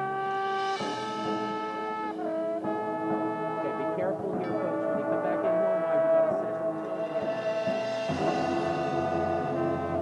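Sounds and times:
brass sustained chord: 0:00.0 - 0:10.0
mallets and percussion: 0:00.0 - 0:10.0.

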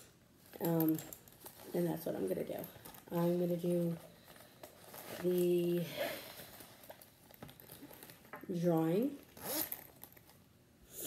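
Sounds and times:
zipper and fabric rustling: 0:00.5 - 0:10.3.

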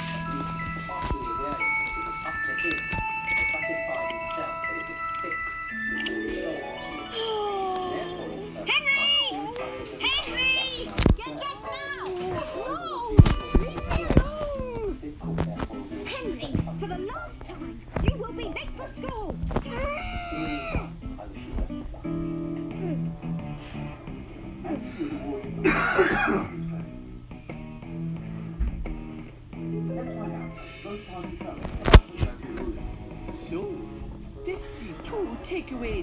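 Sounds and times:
cartoon music: 0:00.0 - 0:10.1
background guitar music: 0:00.0 - 0:36.0
high-pitched cartoon voices: 0:06.0 - 0:13.2
boy's non-word vocal noise: 0:06.1 - 0:15.0.

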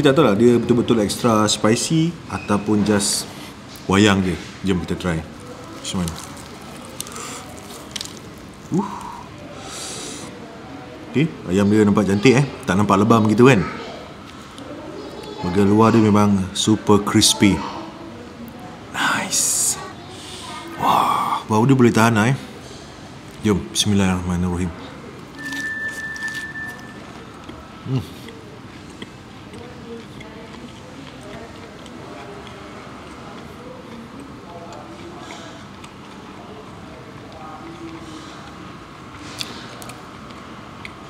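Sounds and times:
fried chicken crackling and crunching: 0:05.0 - 0:10.2, 0:25.3 - 0:41.0
high-pitched tone: 0:25.4 - 0:27.2.

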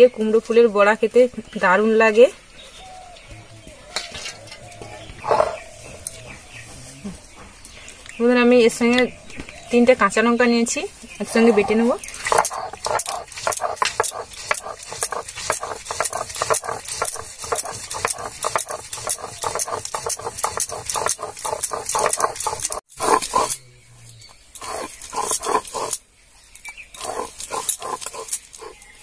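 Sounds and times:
stone grinder scraping lentils: 0:11.3 - 0:23.6, 0:24.2 - 0:26.0, 0:26.9 - 0:29.0.

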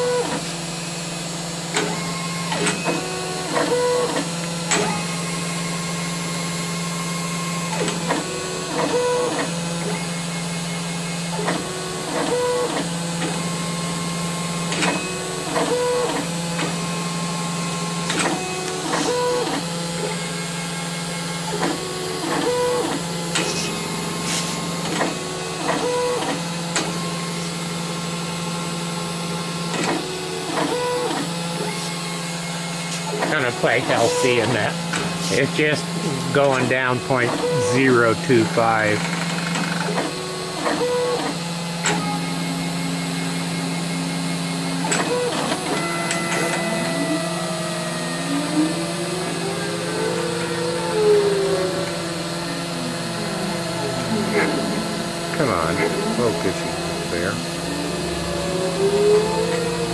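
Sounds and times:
axis motors whirring: 0:00.0 - 0:59.9
engraving spindle humming: 0:00.0 - 0:59.9.

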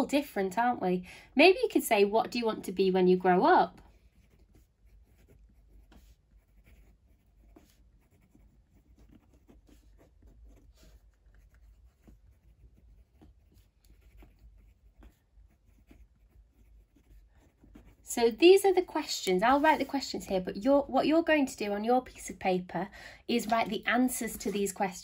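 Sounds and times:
pen scratching on paper: 0:02.6 - 0:20.8, 0:23.4 - 0:25.0.

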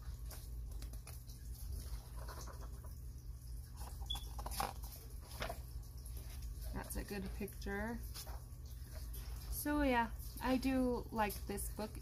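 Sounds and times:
paper pages rustling and turning: 0:00.0 - 0:03.0, 0:03.7 - 0:07.0.

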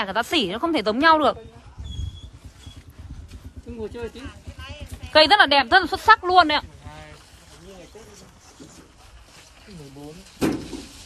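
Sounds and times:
low irregular rumble: 0:00.0 - 0:11.0.

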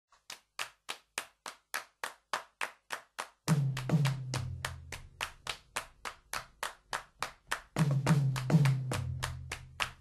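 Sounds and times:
hand claps in steady beat: 0:00.1 - 0:10.0.

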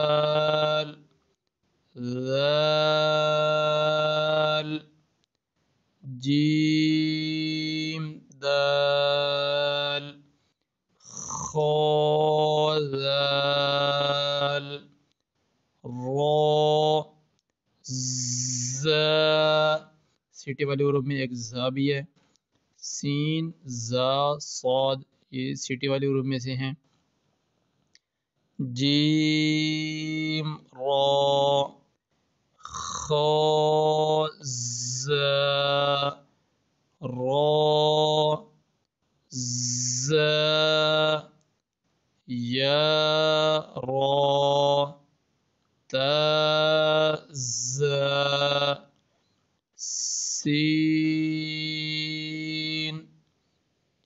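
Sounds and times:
man chanting long tones: 0:00.0 - 0:01.0, 0:02.0 - 0:04.9, 0:06.0 - 0:10.3, 0:11.1 - 0:14.9, 0:15.9 - 0:17.2, 0:17.8 - 0:22.1, 0:22.8 - 0:26.8, 0:28.6 - 0:31.7, 0:32.7 - 0:36.3, 0:37.0 - 0:38.5, 0:39.3 - 0:41.4, 0:42.3 - 0:45.0, 0:45.9 - 0:48.9, 0:49.8 - 0:53.1.

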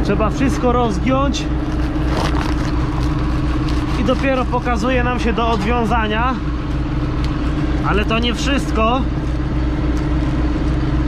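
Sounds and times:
diesel engine running: 0:00.0 - 0:11.0
fabric bag rustling and scraping: 0:01.6 - 0:07.6.

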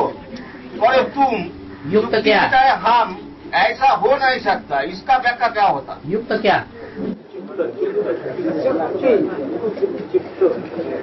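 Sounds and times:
voices talking over one another: 0:00.0 - 0:11.0.

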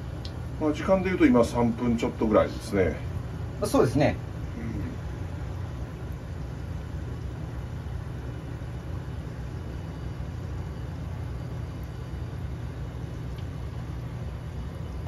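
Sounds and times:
kitchen equipment humming: 0:00.0 - 0:15.0.

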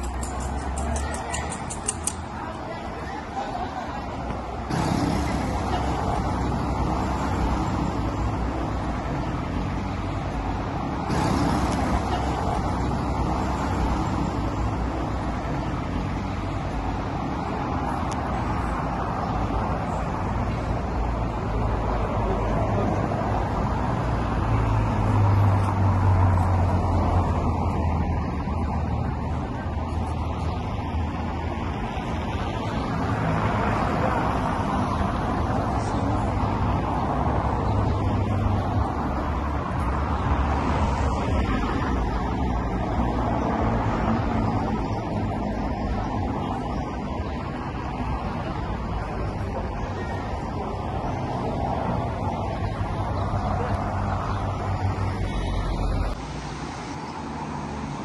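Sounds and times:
cars driving past: 0:00.0 - 0:58.0.

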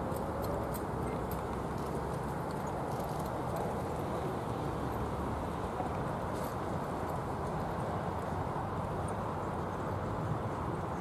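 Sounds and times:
hoofbeats trotting on sand: 0:00.0 - 0:04.5.

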